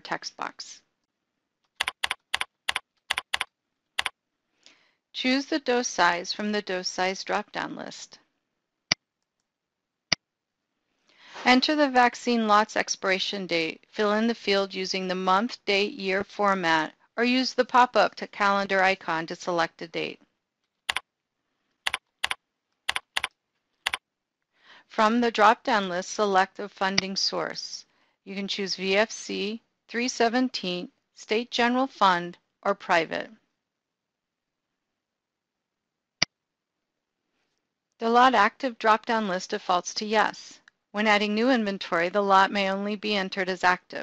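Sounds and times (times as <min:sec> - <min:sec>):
keyboard key clicks: 0:01.8 - 0:04.1.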